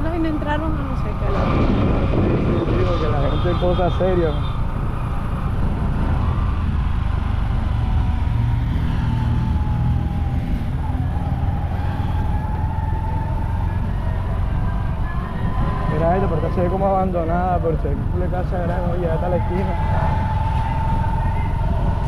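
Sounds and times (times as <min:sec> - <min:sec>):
vehicle engine and road rumble: 0:00.0 - 0:22.0.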